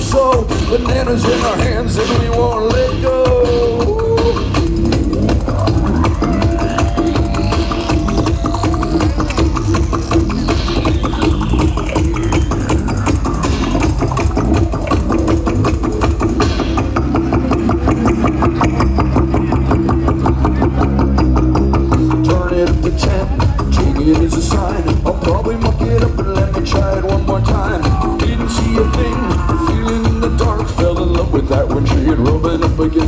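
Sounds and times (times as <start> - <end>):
pulsing electronic music with drone: 0.0 - 32.8.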